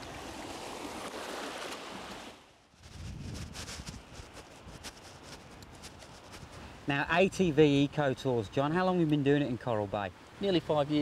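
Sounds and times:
seawater washing over sand: 0.0s - 7.5s.

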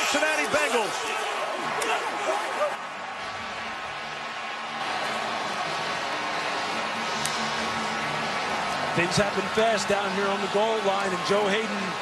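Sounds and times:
stadium crowd noise: 0.0s - 12.0s.

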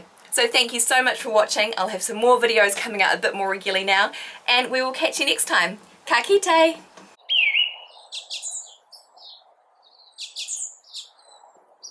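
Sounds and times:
faint steady hiss: 0.0s - 7.2s
birds singing: 7.1s - 11.9s.

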